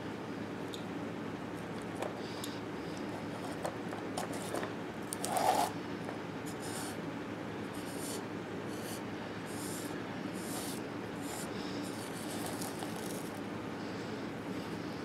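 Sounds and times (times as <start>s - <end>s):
fingers scraping wood shavings: 8.8s - 13.4s.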